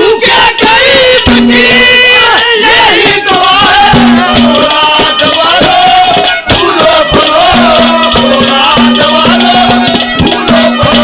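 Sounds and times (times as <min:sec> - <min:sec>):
accompanying band: 0:00.0 - 0:11.0
drum strikes: 0:00.0 - 0:11.0
male voices singing folk song: 0:00.0 - 0:11.0.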